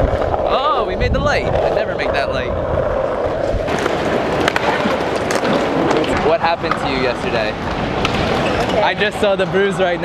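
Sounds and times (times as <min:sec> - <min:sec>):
skateboard wheels rolling on pavement: 0:00.0 - 0:10.0
sharp skateboard clacks: 0:03.1 - 0:08.9.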